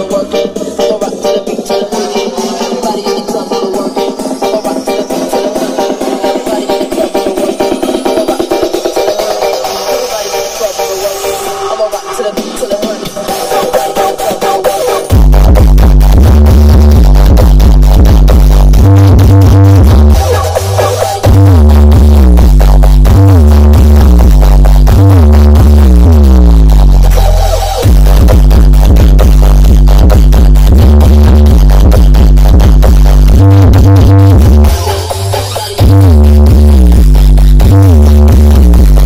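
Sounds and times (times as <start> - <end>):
electronic dance music with heavy bass: 0.0 - 39.0.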